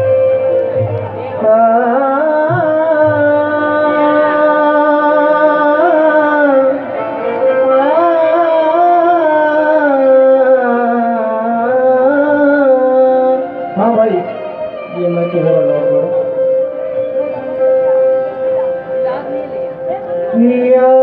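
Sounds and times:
harmonium holding a note: 0.0 - 21.0
man singing ornamented line: 1.1 - 16.6, 20.3 - 21.0.

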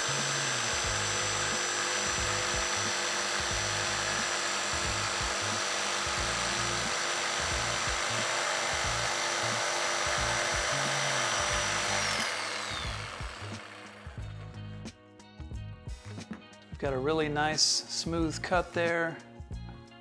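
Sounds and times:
jigsaw cutting wood: 0.0 - 14.3
background music: 0.0 - 20.0.

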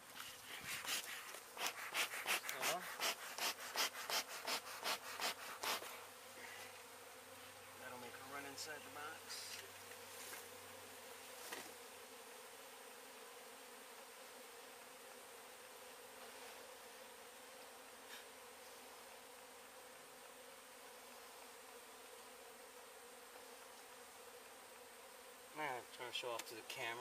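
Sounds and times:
honey bees buzzing: 0.0 - 27.0.

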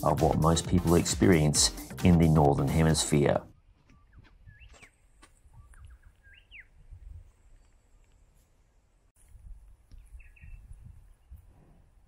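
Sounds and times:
bird chirps: 3.5 - 8.2, 9.9 - 11.4.

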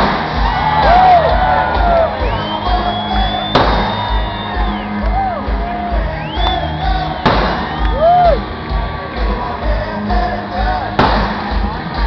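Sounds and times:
kick drum beat: 0.0 - 8.4
live rock band playing: 0.0 - 12.0
sharp crack: 3.4 - 4.2, 7.2 - 8.0, 11.0 - 11.7.

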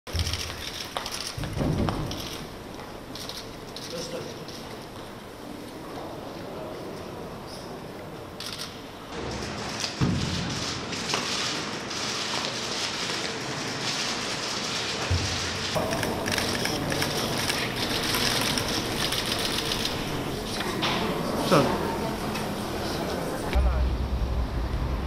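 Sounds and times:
camera shutters clicking: 0.2 - 1.4, 2.0 - 2.5, 3.1 - 4.6, 8.4 - 8.8, 15.9 - 20.1.

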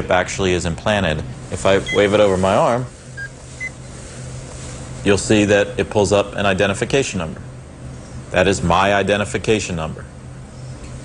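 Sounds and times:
reader short beeps: 1.8 - 2.2.

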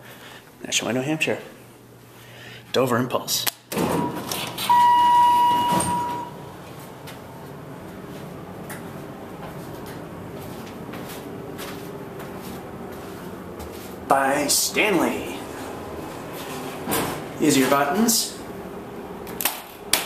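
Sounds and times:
elevator running hum: 3.7 - 20.0
electronic beep: 4.7 - 6.3.

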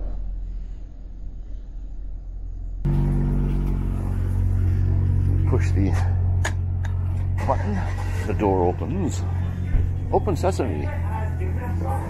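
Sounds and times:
low outdoor rumble: 0.0 - 12.0
van engine idling: 2.8 - 12.0.

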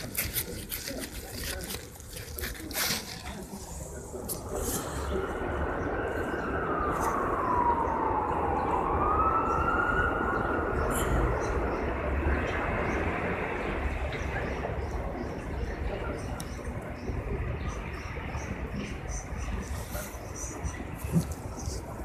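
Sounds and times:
city street noise: 0.0 - 22.0
siren wailing: 5.6 - 11.4.

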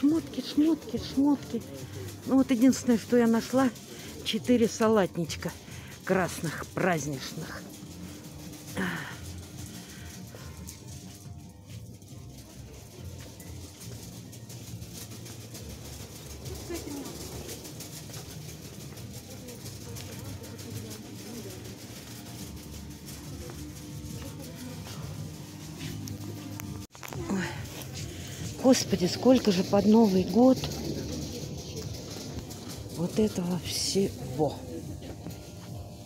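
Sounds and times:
background music: 0.0 - 36.0
faint voices of shoppers: 0.0 - 36.0.

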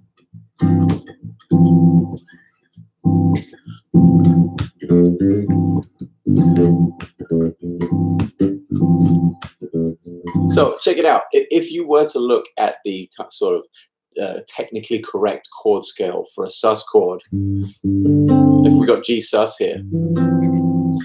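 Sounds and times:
electric bass single notes: 0.3 - 2.2, 3.0 - 10.7, 17.3 - 18.9, 19.7 - 21.0
electric bass chord stabs: 0.4 - 2.2, 3.1 - 10.7, 17.4 - 18.9, 19.8 - 21.0.

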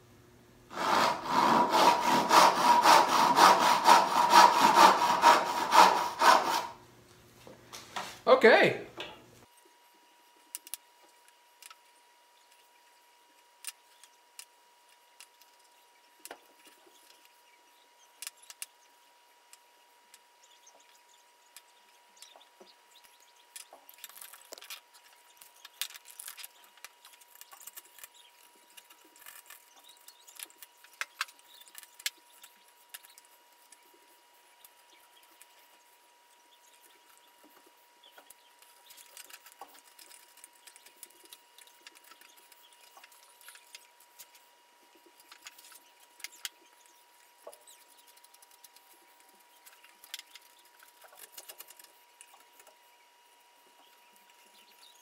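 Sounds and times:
hand chisel scraping wood: 0.7 - 6.8.

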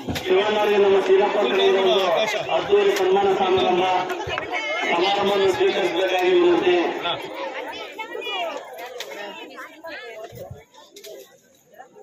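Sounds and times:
overlapping background chatter: 0.0 - 12.0.

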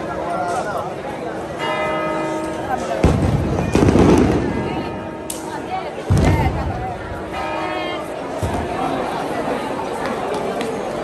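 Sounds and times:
fireworks bangs with echo: 2.8 - 7.3.

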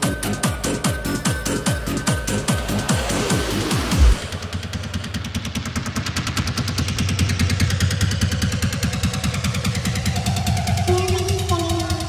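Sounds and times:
techno music: 0.0 - 5.1, 10.0 - 12.0.

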